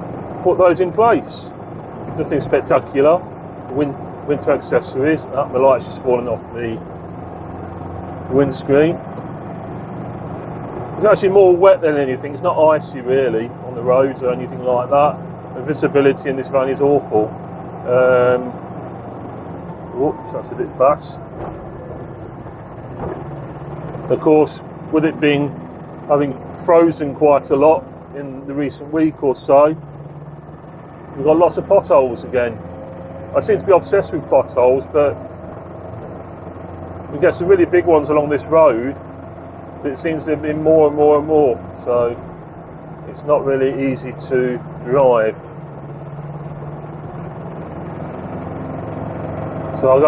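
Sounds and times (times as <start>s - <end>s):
diesel engine drone: 0.0s - 50.0s
road noise: 0.0s - 50.0s.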